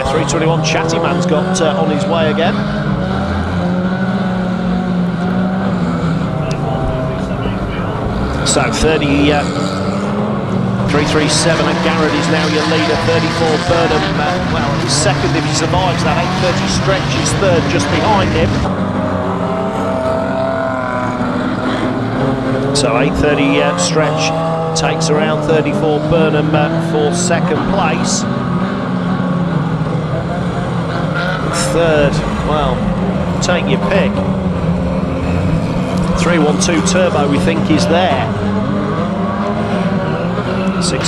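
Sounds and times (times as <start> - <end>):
racing van engines running: 0.0 - 41.0.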